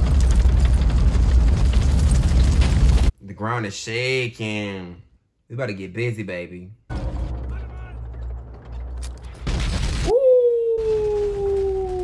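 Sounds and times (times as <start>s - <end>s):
tank engine rumble: 6.9s - 9.8s
tank tracks clanking: 7.0s - 9.8s.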